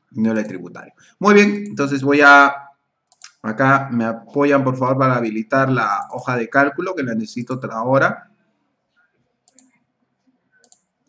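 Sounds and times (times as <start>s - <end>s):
faint clicks: 3.1s - 3.4s, 8.9s - 11.0s.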